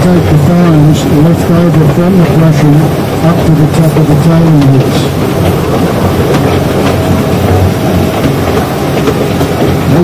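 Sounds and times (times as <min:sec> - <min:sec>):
rumble of train wheels on rail: 0:00.0 - 0:10.0.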